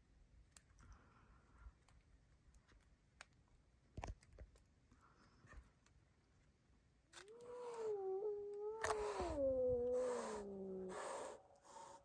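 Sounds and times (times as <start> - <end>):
cat yowling: 7.2 - 12.0.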